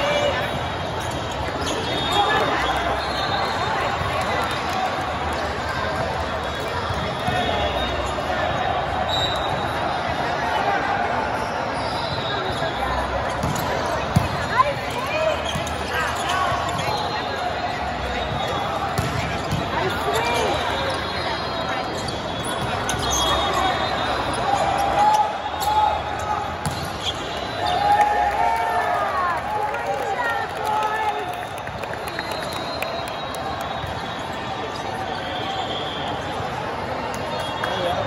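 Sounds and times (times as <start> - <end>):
crowd chatter: 0.0 - 38.0
sneakers squeaking on court floor: 11.4 - 27.8
volleyball hits: 26.6 - 27.2.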